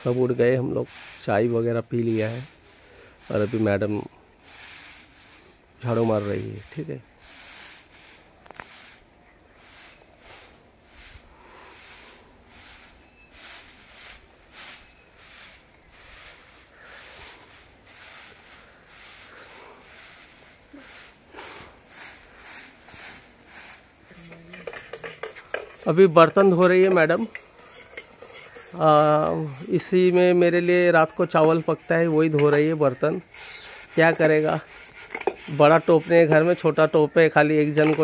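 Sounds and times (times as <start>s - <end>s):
broom sweeping earth: 0.0s - 38.0s.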